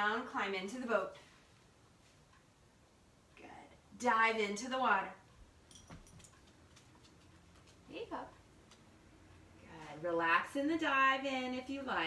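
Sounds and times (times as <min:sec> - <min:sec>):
dog claws ticking on wooden floor: 0:05.7 - 0:07.8.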